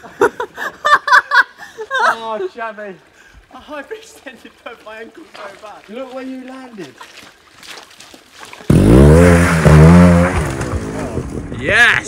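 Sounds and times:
motorcycle engine revving: 8.7 - 11.5.

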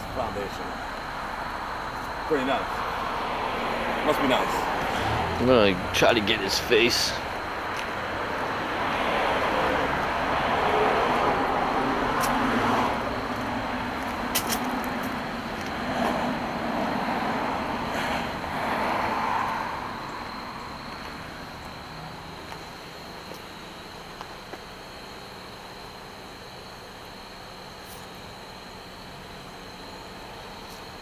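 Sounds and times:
cars driving past: 0.0 - 25.6.

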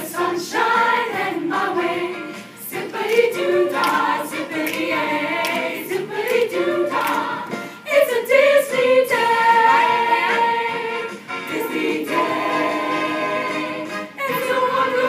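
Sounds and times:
choir singing: 0.0 - 15.0.

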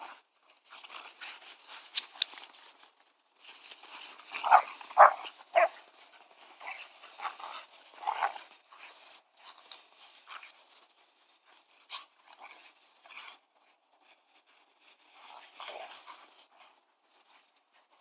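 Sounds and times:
scuffling and rustling in snow: 0.0 - 18.0.

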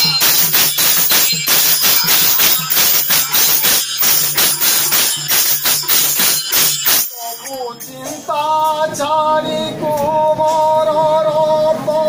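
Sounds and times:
jingling metal percussion: 0.0 - 8.9.

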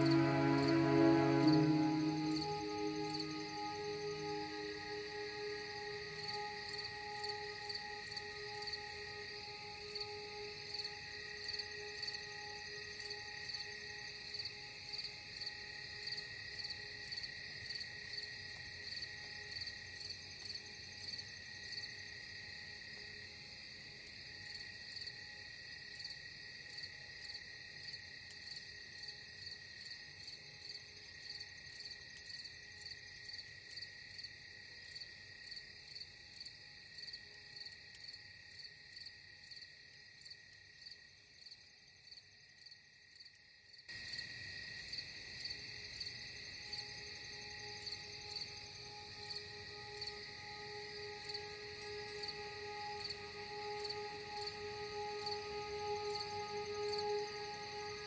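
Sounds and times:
insect chirping: 0.0 - 58.0.

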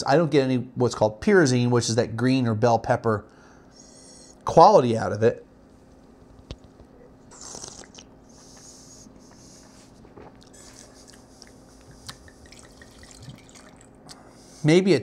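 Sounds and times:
wine being sipped: 7.3 - 14.7.

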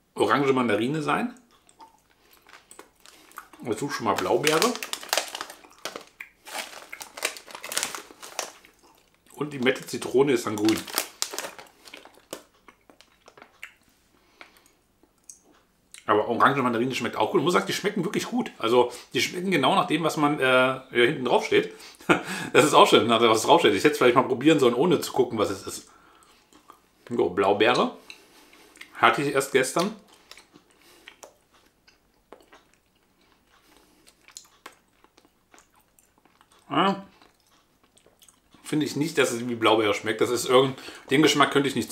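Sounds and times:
wet mouth clicks and smacks: 1.4 - 3.6, 14.4 - 16.0, 30.1 - 38.6
plastic candy bag crinkling: 2.0 - 13.6.

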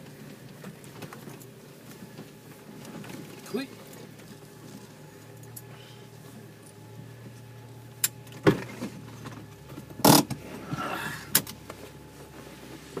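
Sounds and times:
vehicle engine hum: 0.0 - 13.0
sharp knocks and creaks: 8.4 - 10.4.

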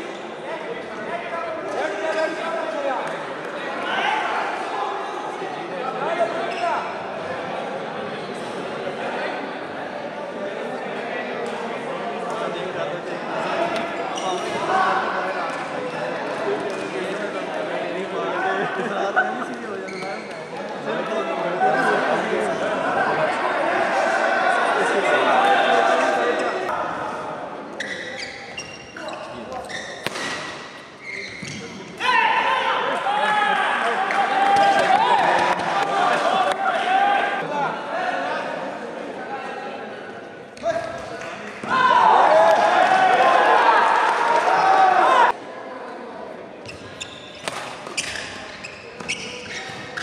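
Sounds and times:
racket striking shuttlecock: 30.0 - 30.6.

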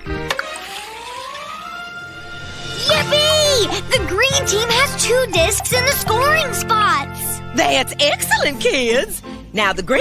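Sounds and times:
light music: 0.0 - 10.0.

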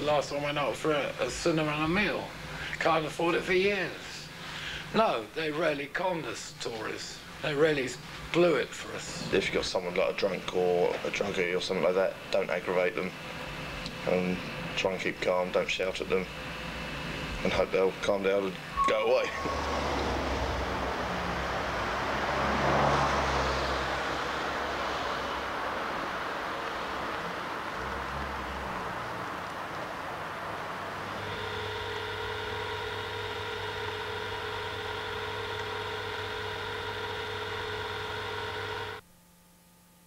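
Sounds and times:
droning hum with held tones: 0.0 - 22.3, 23.6 - 40.0
street traffic noise: 18.8 - 38.0
car passing: 19.4 - 31.3.

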